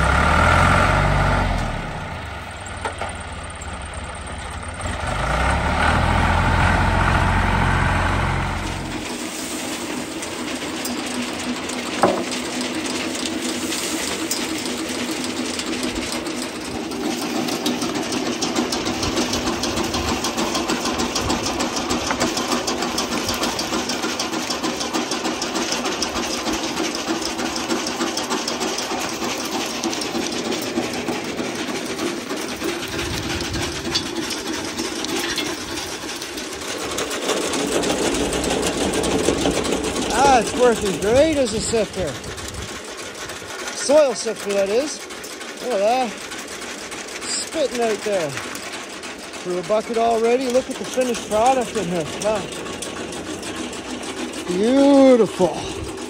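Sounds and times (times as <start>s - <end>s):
soil sifter rattling: 7.2s - 56.0s.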